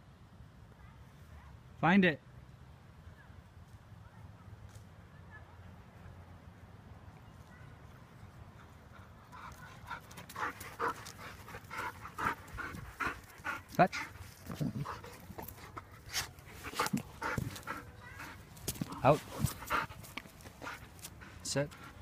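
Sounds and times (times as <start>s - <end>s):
dog panting: 8.5s - 22.0s.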